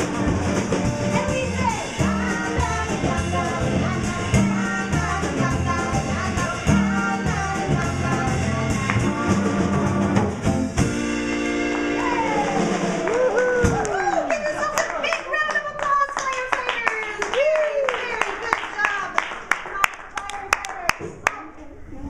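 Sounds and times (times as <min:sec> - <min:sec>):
acoustic guitars and drum kit: 0:00.0 - 0:14.1
scattered clapping: 0:13.0 - 0:21.4.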